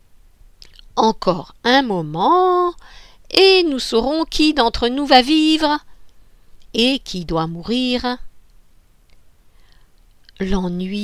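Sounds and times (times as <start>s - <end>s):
woman reading aloud: 0.8s - 5.9s, 6.7s - 8.3s, 10.3s - 11.0s
faint small clicks: 8.4s - 10.4s.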